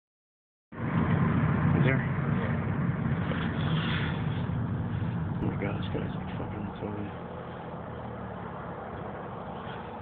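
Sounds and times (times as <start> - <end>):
car engine drone: 0.7 - 10.0
road noise: 0.7 - 10.0.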